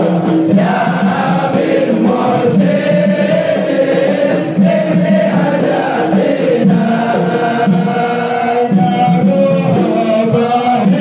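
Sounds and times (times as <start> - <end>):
men singing a devotional chant: 0.0 - 11.0.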